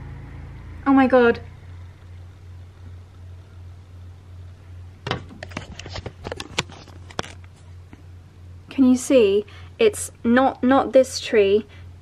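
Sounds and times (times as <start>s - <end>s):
low steady hum: 0.0s - 12.0s
camera handling clicks and rustles: 5.4s - 7.6s.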